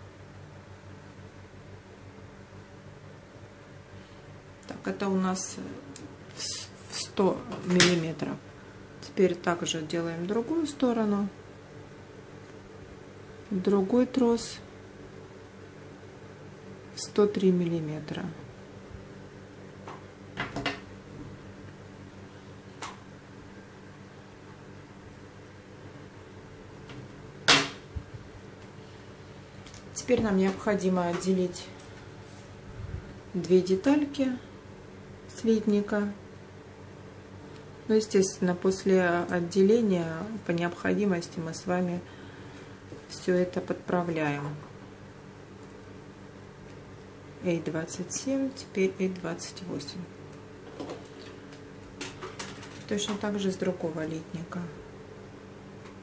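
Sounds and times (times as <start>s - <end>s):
low room hum: 0.0s - 56.0s.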